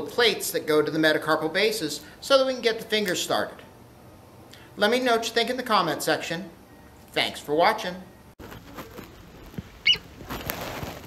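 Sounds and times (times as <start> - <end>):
soft rustling: 8.4 - 11.0.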